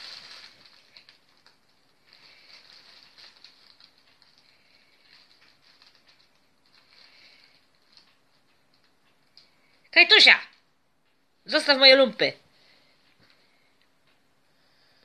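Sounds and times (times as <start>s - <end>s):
fabric tunnel rustling: 0.0s - 8.2s.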